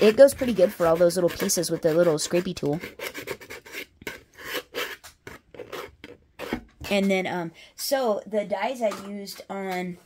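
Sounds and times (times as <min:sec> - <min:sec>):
scraper rasping on a mat: 0:00.0 - 0:06.7.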